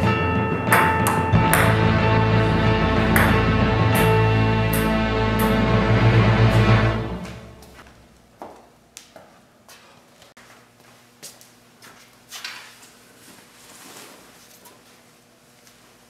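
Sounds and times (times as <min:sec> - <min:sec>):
music track: 0:00.0 - 0:07.9
footsteps on hard floor: 0:07.2 - 0:08.6.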